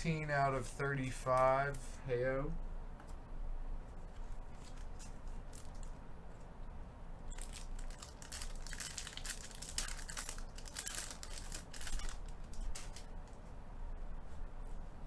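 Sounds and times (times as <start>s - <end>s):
foil pack tearing and crinkling: 7.3s - 13.1s.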